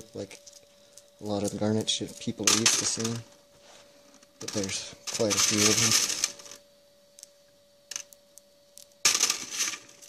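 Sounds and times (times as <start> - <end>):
pebbles rattling on metal mesh: 1.3 - 3.3, 4.4 - 6.6, 9.0 - 10.0.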